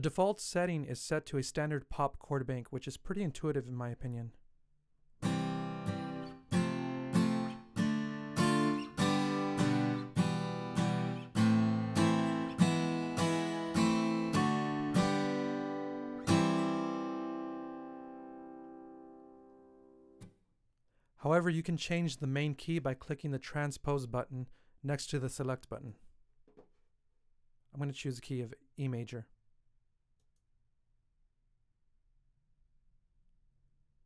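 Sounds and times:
acoustic guitar strumming chords: 0:05.2 - 0:20.2.

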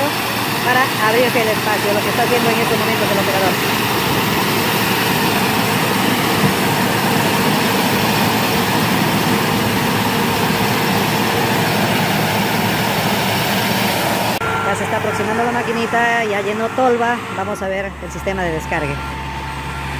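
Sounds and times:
combine harvester running: 0:00.0 - 0:19.9.

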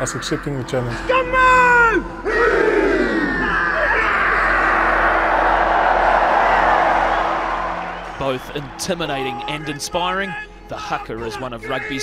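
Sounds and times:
men shouting war cry: 0:01.1 - 0:05.3
crowd roar: 0:02.2 - 0:09.8.

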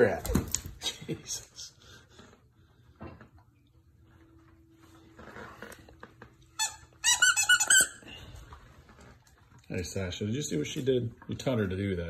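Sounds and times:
squeaky toy squeaking: 0:06.6 - 0:08.0.

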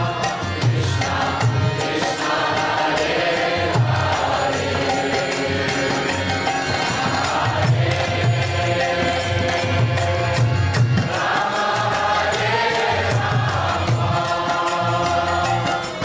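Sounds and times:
harmonium: 0:00.0 - 0:16.0
voices chanting together: 0:00.0 - 0:16.0.

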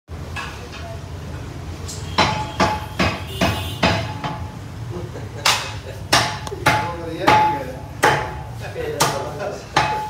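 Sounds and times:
cleaver chopping meat on wood: 0:05.5 - 0:08.4.

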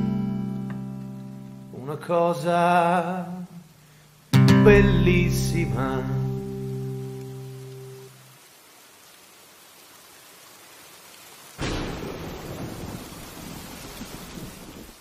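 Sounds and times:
acoustic guitar chord: 0:00.0 - 0:03.4, 0:04.3 - 0:08.2
faint steady hiss: 0:00.0 - 0:15.0
rain: 0:00.0 - 0:15.0
thunder clap: 0:11.6 - 0:15.0.

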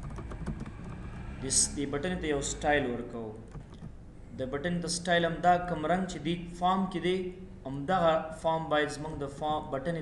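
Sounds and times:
computer keyboard typing: 0:00.0 - 0:01.4, 0:03.5 - 0:04.0
person speaking: 0:01.4 - 0:10.0.

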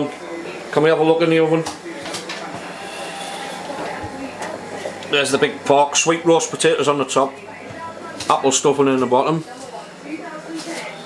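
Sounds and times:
oven hissing: 0:00.2 - 0:11.0.

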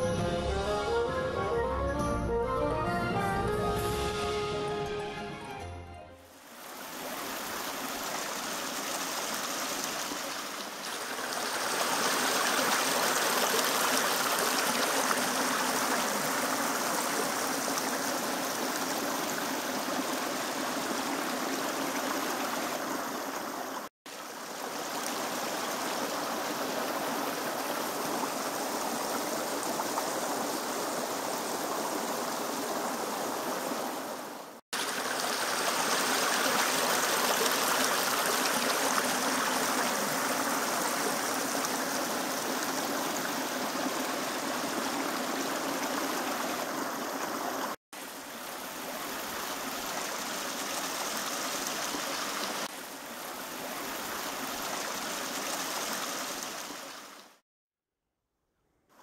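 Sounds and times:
stream rushing: 0:06.3 - 0:57.4.

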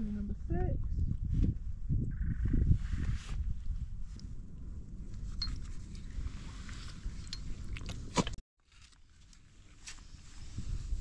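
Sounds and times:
wind buffeting microphone: 0:00.0 - 0:08.1, 0:10.1 - 0:11.0.

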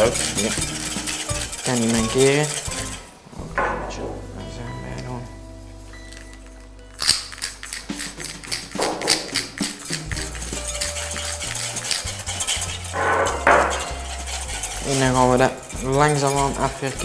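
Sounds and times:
whisk clinking on glass bowl: 0:00.0 - 0:03.0, 0:09.2 - 0:17.0
background music: 0:00.0 - 0:17.0.

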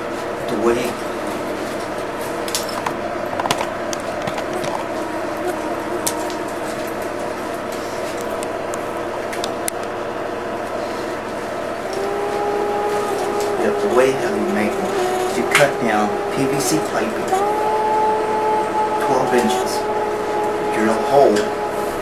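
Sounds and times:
steady background hum: 0:00.0 - 0:22.0.

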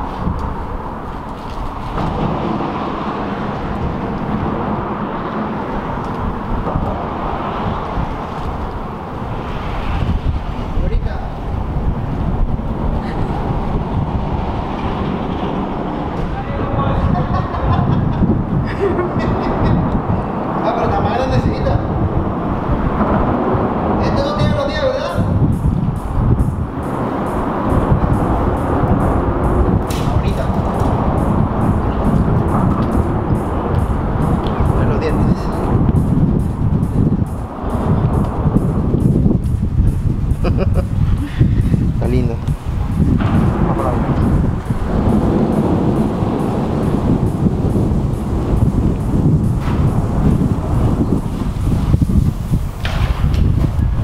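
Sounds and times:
low outdoor rumble: 0:00.0 - 0:54.0
indistinct voices: 0:41.1 - 0:51.0.

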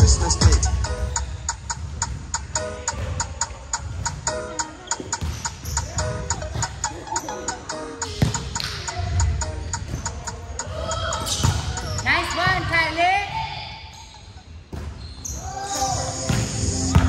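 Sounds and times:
music: 0:00.0 - 0:12.2, 0:15.5 - 0:17.0
players' voices: 0:00.0 - 0:17.0
volleyball struck by hand: 0:08.0 - 0:08.9.

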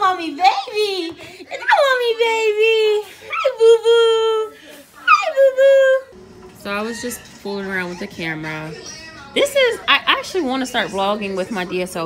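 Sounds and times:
woman's voice: 0:00.0 - 0:12.0
baby squealing: 0:05.0 - 0:06.1.

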